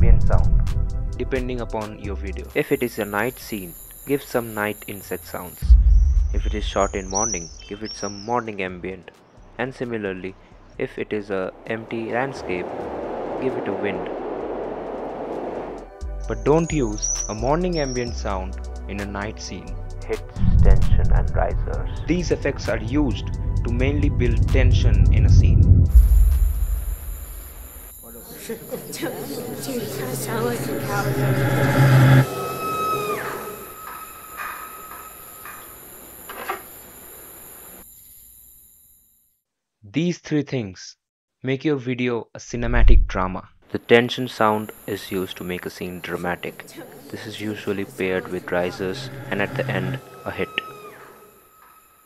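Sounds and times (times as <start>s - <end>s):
wind rushing: 0.0s - 1.5s, 10.8s - 16.2s, 20.4s - 27.9s
riser sound effect: 0.0s - 1.8s, 5.6s - 8.0s, 10.8s - 16.6s, 20.4s - 28.1s
deep drone: 0.0s - 8.3s, 9.8s - 36.4s, 44.5s - 51.4s
high tone sliding down: 10.8s - 18.2s, 20.4s - 37.5s, 44.4s - 52.0s.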